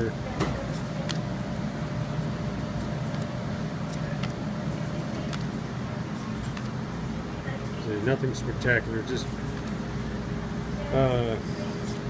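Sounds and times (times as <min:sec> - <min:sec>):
low background hum: 0:00.0 - 0:12.0
trading cards clicking: 0:06.3 - 0:06.8.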